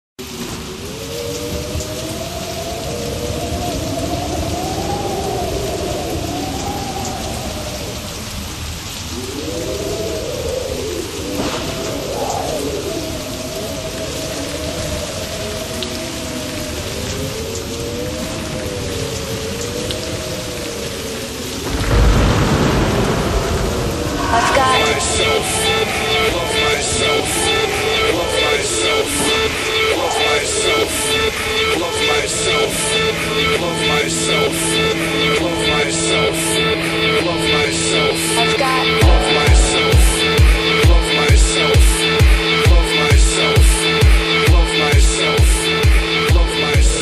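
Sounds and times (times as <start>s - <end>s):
rain hissing: 0.2s - 47.0s
thunder rumbling: 0.4s - 47.0s.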